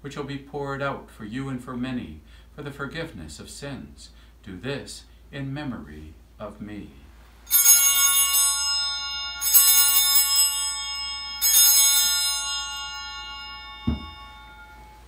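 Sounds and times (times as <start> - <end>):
altar bells ringing: 7.5 - 15.0
low thump: 13.8 - 14.3.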